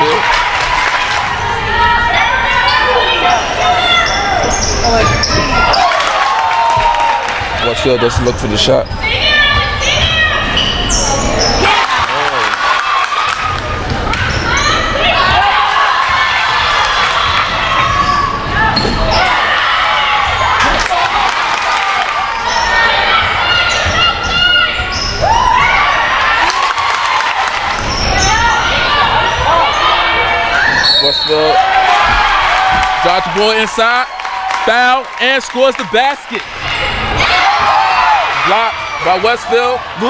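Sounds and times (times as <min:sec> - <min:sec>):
crowd cheering: 0:00.0 - 0:08.3, 0:09.0 - 0:40.0
people shouting: 0:09.0 - 0:33.9, 0:36.0 - 0:40.0.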